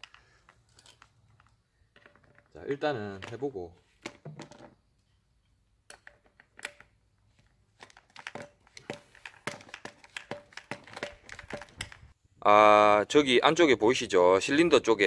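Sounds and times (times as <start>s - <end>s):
clicks and scrapes of pump parts: 0.0s - 4.8s, 5.9s - 12.2s.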